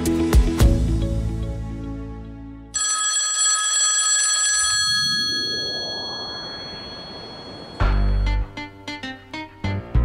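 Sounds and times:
antique telephone bell ringing: 2.8 - 8.4
rising noise: 4.8 - 8.8
musical logo sting: 7.8 - 9.0.

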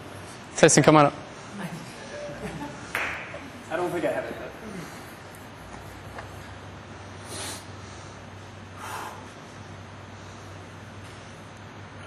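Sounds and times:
low steady hum: 0.0 - 12.0
short breaths: 7.0 - 10.8.

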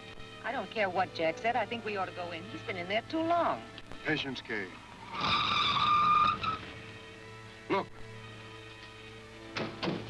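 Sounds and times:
tyres squealing: 4.8 - 7.0.

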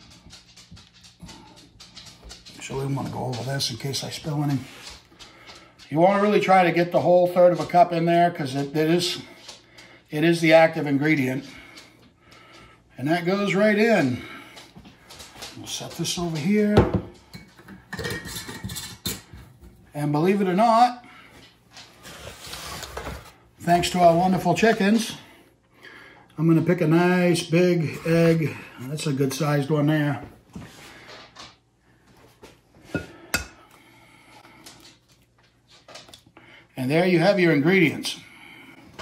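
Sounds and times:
glass jar and utensils clinking: 17.3 - 19.4.

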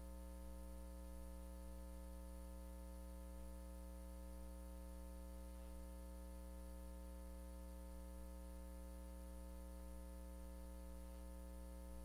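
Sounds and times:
electrical mains hum: 0.0 - 12.0
faint buzz: 0.0 - 12.0.

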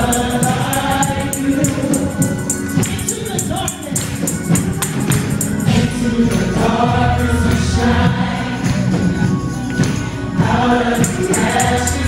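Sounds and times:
accompanying music: 0.0 - 12.0
gospel group singing: 0.0 - 12.0
steady percussion beat: 0.0 - 12.0.

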